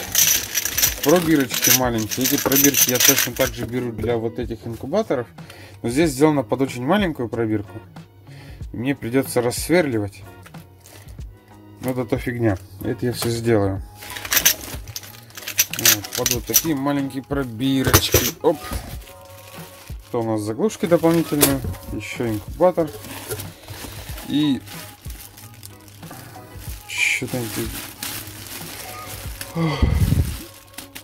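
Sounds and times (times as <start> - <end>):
test tubes clinking: 0.0 - 3.6, 14.0 - 16.9, 17.6 - 20.0
newspaper and plastic bags rustling: 0.0 - 5.0, 10.8 - 11.2, 11.8 - 31.0.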